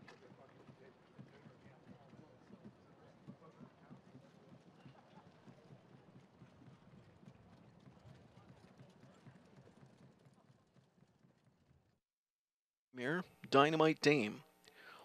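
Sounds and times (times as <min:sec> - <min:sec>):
hoofbeats on dirt track: 0:00.0 - 0:12.0.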